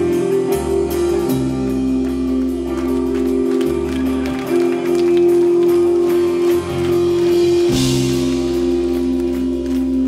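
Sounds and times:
distorted guitar and bass chords: 0:00.0 - 0:10.0.

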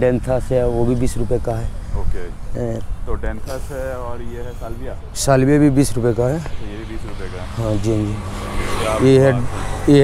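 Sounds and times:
man talking: 0:00.0 - 0:10.0
vehicle passing by: 0:03.6 - 0:10.0.

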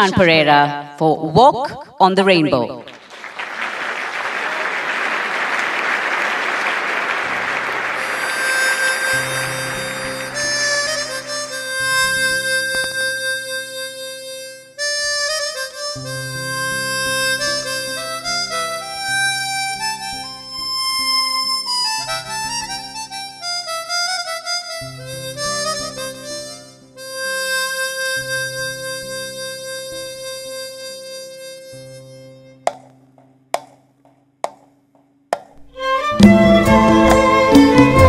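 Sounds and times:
harmonica melody: 0:00.0 - 0:00.6, 0:06.5 - 0:33.8, 0:35.6 - 0:38.0
low accompaniment chords: 0:06.8 - 0:14.4
sharp percussive clicks: 0:32.7 - 0:35.7.

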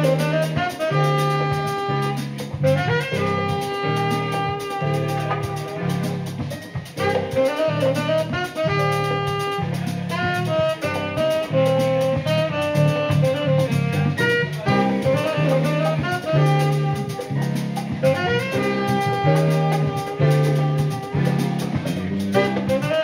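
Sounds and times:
bass: 0:00.0 - 0:23.0
drum kit: 0:00.0 - 0:23.0
hand percussion: 0:00.0 - 0:23.0
piano: 0:00.0 - 0:23.0
tenor saxophone melody: 0:00.0 - 0:23.0.

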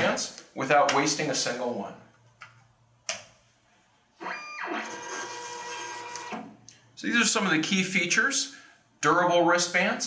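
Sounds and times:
printer motor whine: 0:04.2 - 0:06.5.

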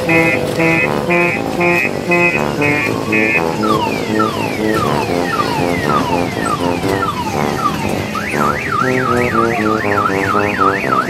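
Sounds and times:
electronic siren warble: 0:00.0 - 0:11.0
simple beeping melody: 0:00.0 - 0:11.0.

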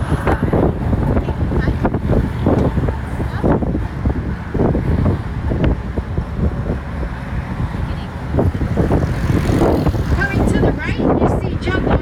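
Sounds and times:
passengers talking: 0:00.0 - 0:12.0
road noise rumble: 0:00.0 - 0:12.0
wind buffeting microphone: 0:00.0 - 0:12.0.

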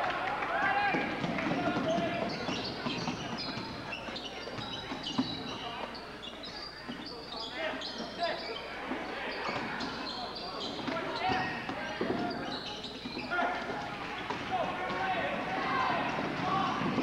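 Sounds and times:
echoing voices: 0:00.0 - 0:17.0
sneakers squeaking: 0:00.9 - 0:17.0.

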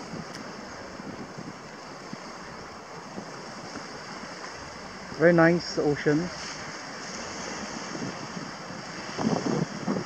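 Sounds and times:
sea waves on rocky shore: 0:00.0 - 0:10.0
wind on microphone: 0:00.0 - 0:10.0.

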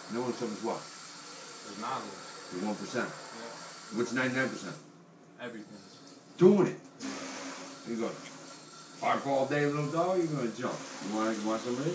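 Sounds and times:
steady hiss: 0:07.2 - 0:11.9.

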